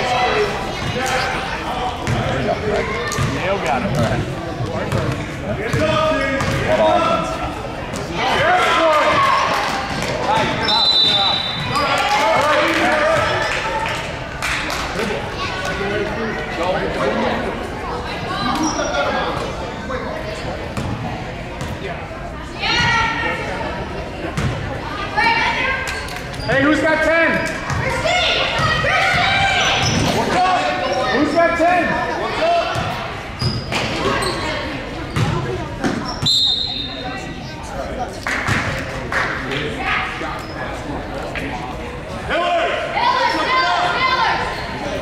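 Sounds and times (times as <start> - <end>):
people shouting in echoing gym: 5.6 - 13.9, 22.6 - 23.7, 24.8 - 25.9, 27.0 - 33.3, 42.3 - 45.0
basketball bouncing on gym floor: 35.2 - 36.0
short shrill whistle: 36.2 - 37.0.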